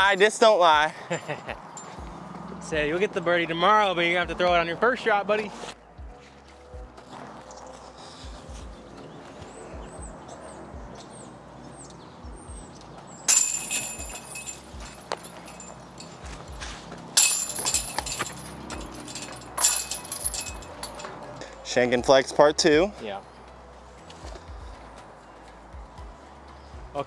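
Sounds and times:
metal chains jingling: 1.7s - 2.6s, 13.3s - 21.4s
footsteps on grass: 16.0s - 17.1s.

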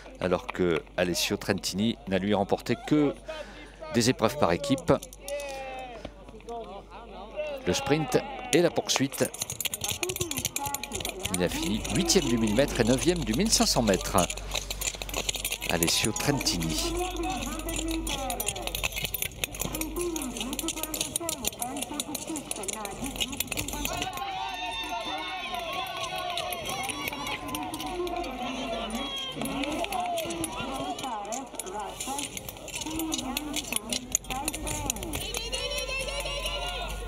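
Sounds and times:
people talking: 0.0s - 14.6s, 15.6s - 37.0s
sharp high ticks and scrapes: 8.7s - 37.0s.

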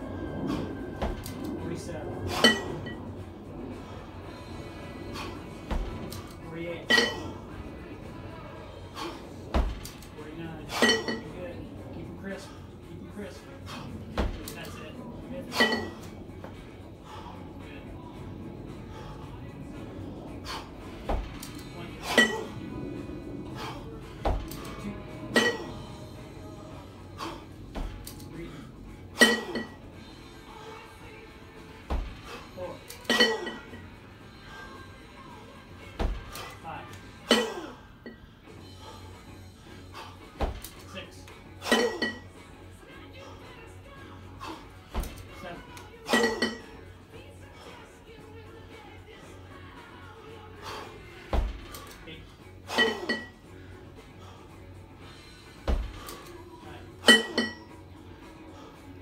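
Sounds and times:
kettlebells clanking together: 2.3s - 3.0s, 5.8s - 7.4s, 9.6s - 11.4s, 15.5s - 16.1s, 21.1s - 22.6s, 24.2s - 25.8s, 29.2s - 29.8s, 32.9s - 33.8s, 41.6s - 42.3s, 46.0s - 46.8s, 52.7s - 53.4s, 57.0s - 57.8s.

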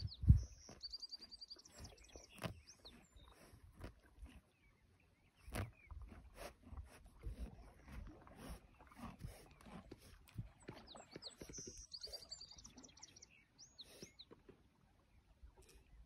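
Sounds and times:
small bird chirping: 0.0s - 3.4s, 10.7s - 14.4s
horse chewing grass: 0.0s - 16.0s.

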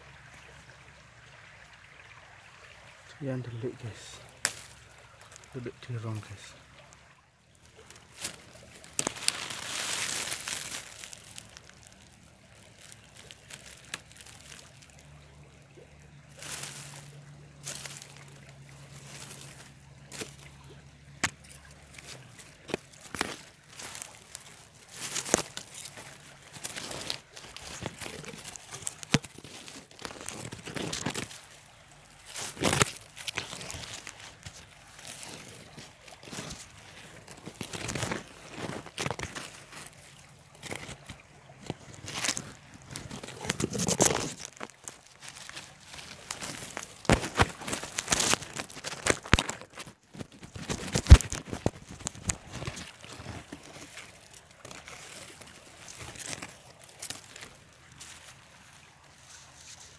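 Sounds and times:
dry leaves and soil rustling: 0.0s - 59.9s.

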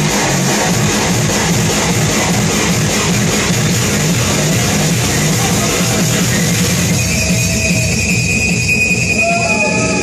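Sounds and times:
dense low bass: 0.0s - 10.0s.

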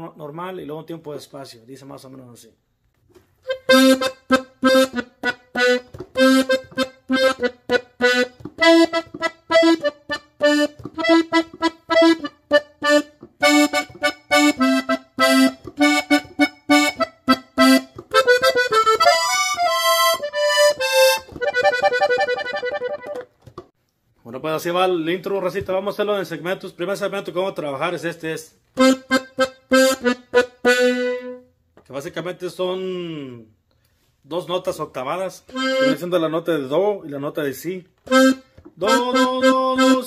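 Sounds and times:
button accordion playing: 3.4s - 23.4s, 28.8s - 31.5s, 35.5s - 36.3s, 38.0s - 40.0s.

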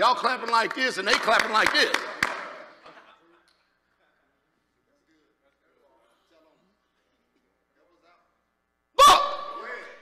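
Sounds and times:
hand clap echoing in a large hall: 0.0s - 3.9s.

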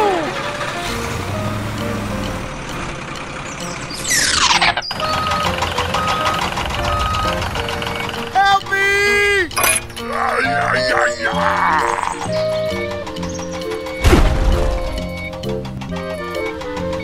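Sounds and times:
truck engine running: 0.0s - 17.0s.

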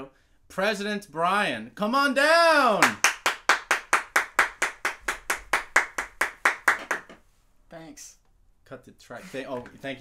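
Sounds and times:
hand clapping: 2.8s - 7.2s.

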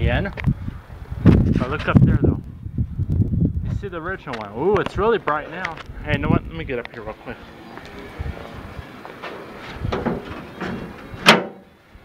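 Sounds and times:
car door metal clunk: 9.2s - 11.7s.

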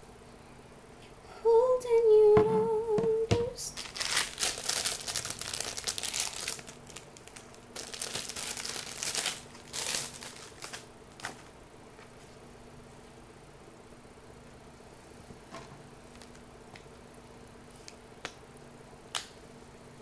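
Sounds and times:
brief wavering hum: 1.2s - 3.8s
plastic packaging crinkling: 3.7s - 11.5s.

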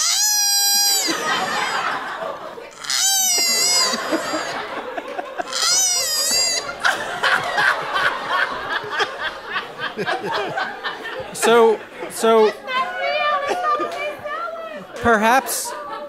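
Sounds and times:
koala crying: 0.0s - 6.9s
audience laughing: 0.6s - 16.0s.

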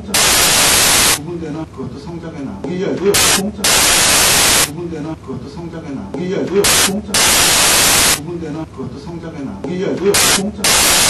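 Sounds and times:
loud hissing static: 0.0s - 1.3s, 3.0s - 4.8s, 6.6s - 8.2s, 10.1s - 11.0s
man speaking: 1.2s - 3.7s, 4.7s - 7.4s, 8.2s - 10.7s.

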